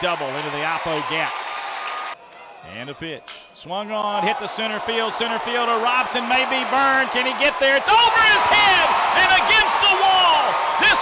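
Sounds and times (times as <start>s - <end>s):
man announcing excitedly: 0.0s - 1.4s, 2.6s - 11.0s.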